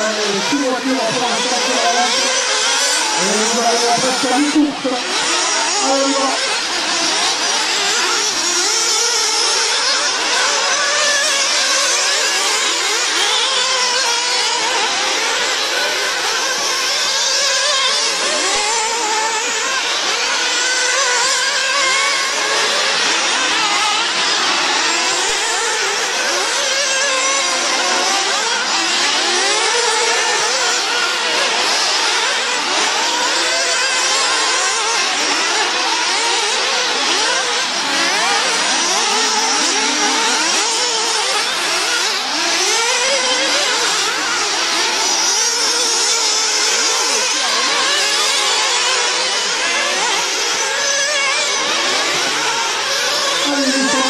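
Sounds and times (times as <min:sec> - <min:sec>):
rc car engines whining: 0:00.0 - 0:54.0.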